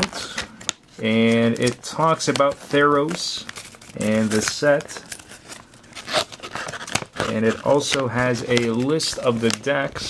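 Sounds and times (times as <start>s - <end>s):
glossy paper crinkling: 0.0s - 10.0s.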